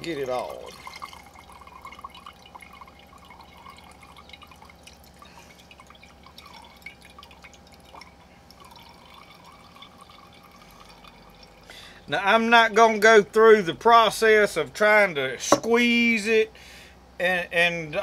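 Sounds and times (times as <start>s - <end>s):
liquid dripping into jar: 0.1s - 11.8s.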